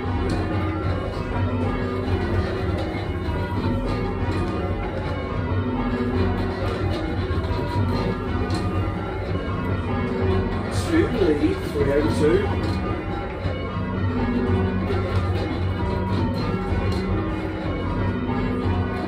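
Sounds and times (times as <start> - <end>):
church bells ringing: 0.0 - 19.0
person speaking: 10.7 - 12.6.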